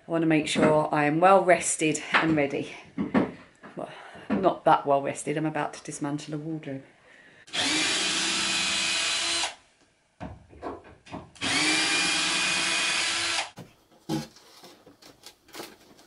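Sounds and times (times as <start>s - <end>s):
cordless drill motor whine: 7.5s - 9.6s, 11.4s - 13.5s.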